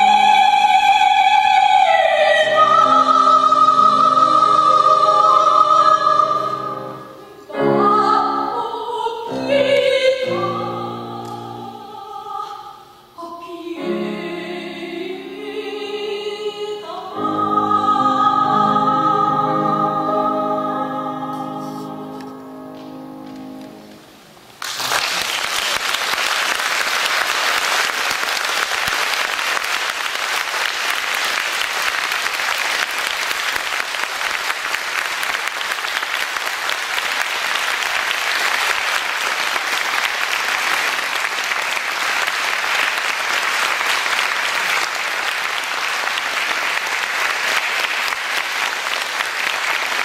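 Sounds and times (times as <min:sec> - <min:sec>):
audience applause: 0:24.6 - 0:50.0.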